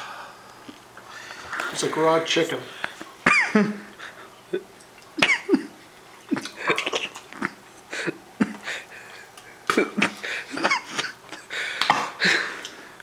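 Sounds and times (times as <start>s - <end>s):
man coughing and gagging: 3.2s - 3.9s, 4.6s - 8.9s, 9.6s - 12.4s.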